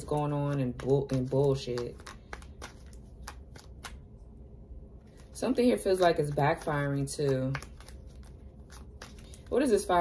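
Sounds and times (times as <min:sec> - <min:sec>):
light clicks and taps of cards: 0:00.7 - 0:04.0.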